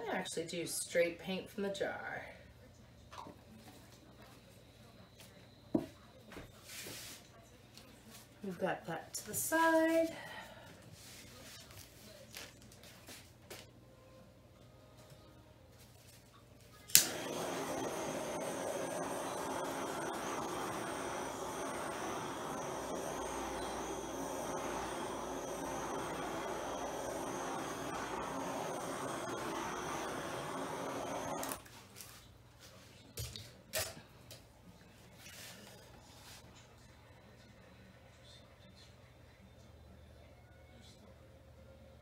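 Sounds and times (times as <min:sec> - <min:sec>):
heat gun running with high whine: 0:16.9 - 0:31.7.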